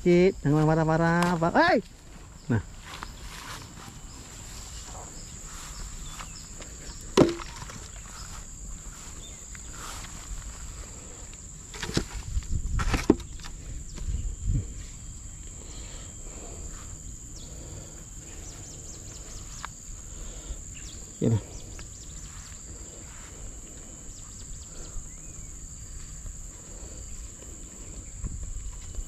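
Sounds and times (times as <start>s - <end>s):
high-pitched insect drone: 0.0s - 29.0s.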